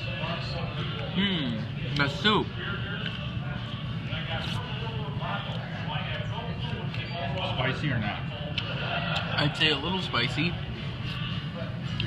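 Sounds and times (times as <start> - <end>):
diners chattering: 0.0 - 12.0.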